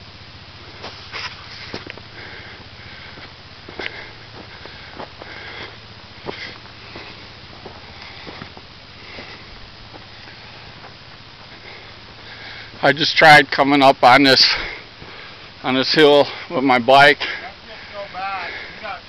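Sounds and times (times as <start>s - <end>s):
footsteps on gravel: 0.7s - 12.8s
hard breathing: 0.7s - 12.8s, 14.4s - 15.6s, 16.2s - 16.6s, 17.2s - 19.0s.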